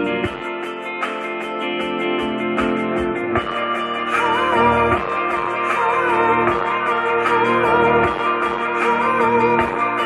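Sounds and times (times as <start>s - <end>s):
electric guitar lead line: 0.0s - 10.0s
rock band playing live: 0.0s - 10.0s.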